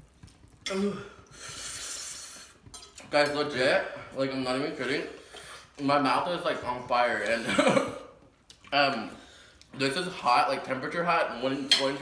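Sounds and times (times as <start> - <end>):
person hissing air through mouth: 1.3 - 2.6.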